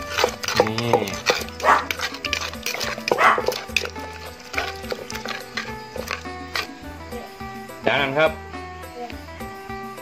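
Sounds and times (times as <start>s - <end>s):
wooden pestle pounding in mortar: 0.0s - 6.7s
background music with bass pulse: 0.0s - 10.0s.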